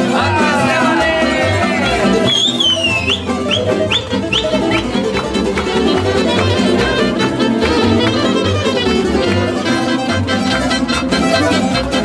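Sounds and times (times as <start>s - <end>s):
steady bass beat: 0.0s - 9.8s
tamburica strumming: 0.0s - 12.0s.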